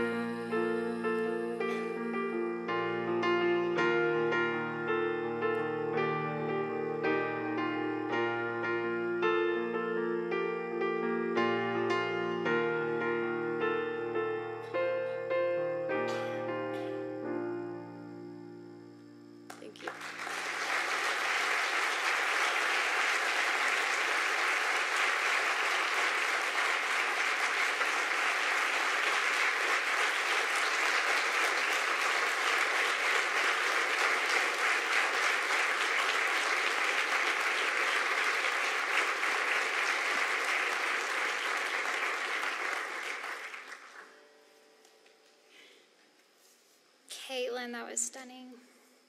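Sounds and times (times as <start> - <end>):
audience applauding: 19.5 - 44.2.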